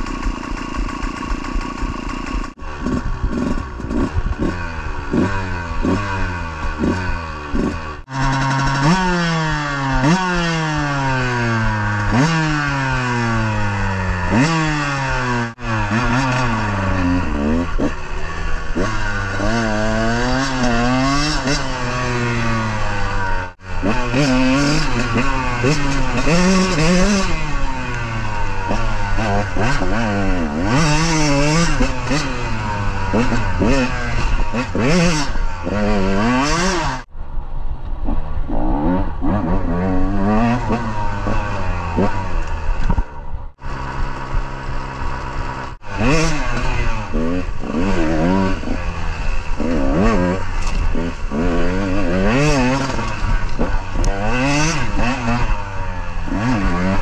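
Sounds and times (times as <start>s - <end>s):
dirt bike engine revving: 0.0s - 37.1s, 38.0s - 57.0s.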